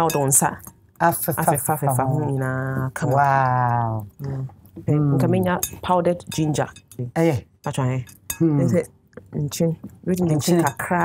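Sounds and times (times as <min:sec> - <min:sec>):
glass bowl clinking: 0:00.0 - 0:00.5.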